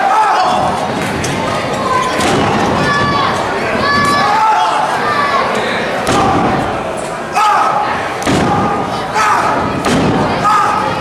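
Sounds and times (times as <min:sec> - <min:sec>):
loud shout: 0:00.0 - 0:00.8, 0:02.8 - 0:06.6, 0:07.3 - 0:09.7, 0:10.3 - 0:11.0
slaps and thuds of blows: 0:08.2 - 0:08.7, 0:09.8 - 0:10.2.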